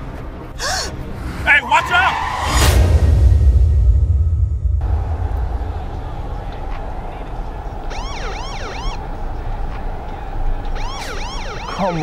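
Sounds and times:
road noise inside a car: 5.6s - 12.0s
police siren yelps: 7.8s - 9.4s, 10.5s - 12.0s.

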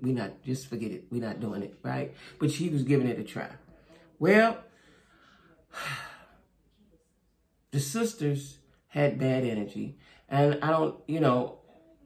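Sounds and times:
woman sighing: 5.7s - 6.4s.

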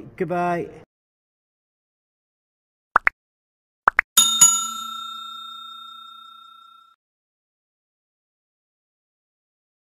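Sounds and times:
notification bell dinging: 4.2s - 6.9s.

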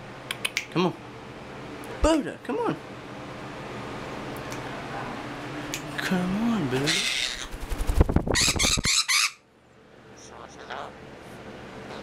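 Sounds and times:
parrot squawking: 6.8s - 7.6s, 8.3s - 9.5s, 10.2s - 11.0s
wings beating rapidly: 6.9s - 9.0s.

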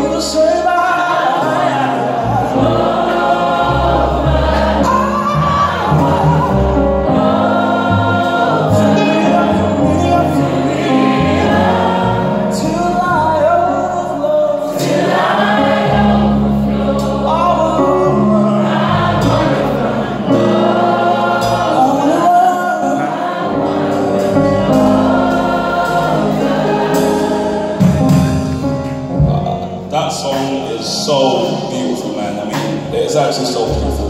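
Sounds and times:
live soul band playing: 0.0s - 34.0s.

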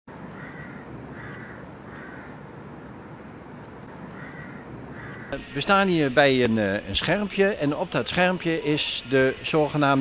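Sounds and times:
low outdoor rumble: 0.1s - 10.0s
crow cawing: 0.4s - 2.4s, 4.1s - 5.5s.

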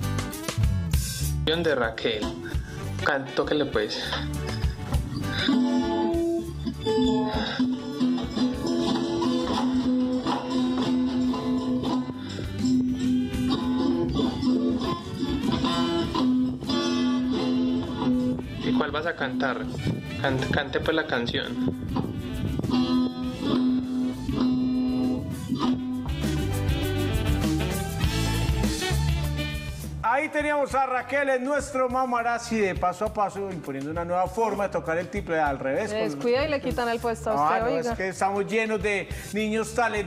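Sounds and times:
stringed instrument strummed and plucked: 4.1s - 27.7s
child strumming guitar: 7.6s - 12.2s.

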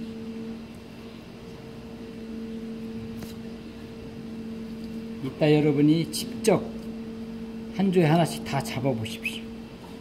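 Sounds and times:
machine hum: 0.0s - 10.0s.

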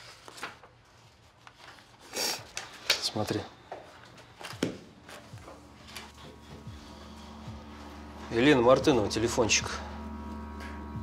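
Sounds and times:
low background music score: 2.9s - 11.0s.

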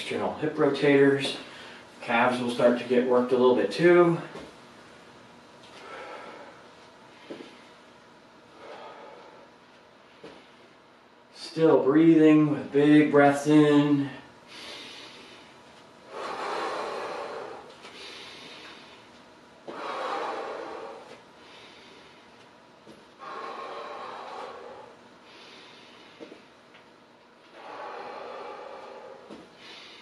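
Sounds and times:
man breathing deeply: 1.4s - 2.0s, 5.6s - 7.8s, 8.4s - 10.9s, 14.4s - 26.8s, 27.4s - 30.0s.

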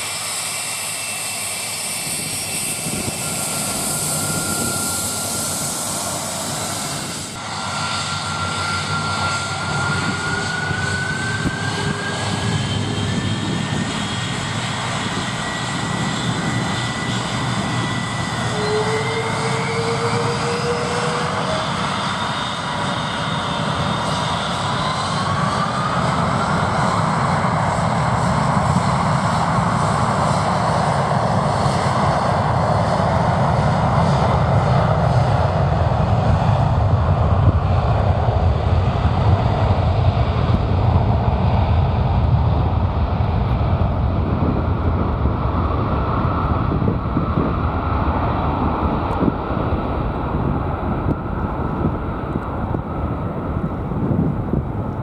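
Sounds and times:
jet engines at takeoff thrust: 0.0s - 55.0s.

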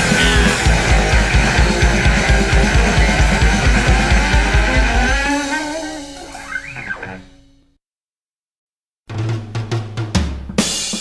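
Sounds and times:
low held bass note: 0.0s - 1.0s
drum hits: 0.0s - 1.3s.

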